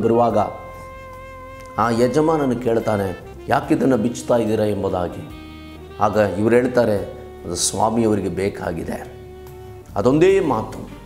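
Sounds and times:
soft background music: 0:00.0 - 0:11.0
man preaching: 0:01.7 - 0:05.4, 0:06.0 - 0:09.1.

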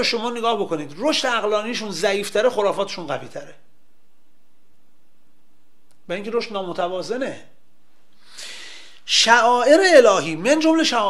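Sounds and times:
man speaking: 0:00.0 - 0:03.7, 0:06.0 - 0:07.6, 0:09.1 - 0:11.0
quick breath intake: 0:08.1 - 0:09.1.

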